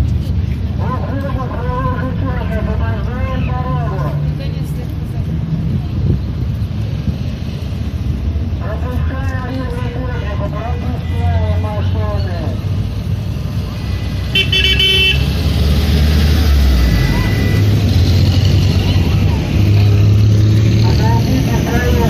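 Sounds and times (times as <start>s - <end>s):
vehicle engines rumbling: 0.0s - 22.0s.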